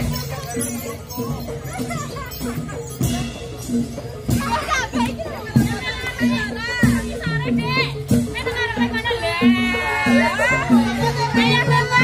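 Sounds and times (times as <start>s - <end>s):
children shouting and shrieking: 0.0s - 8.1s, 8.7s - 12.0s.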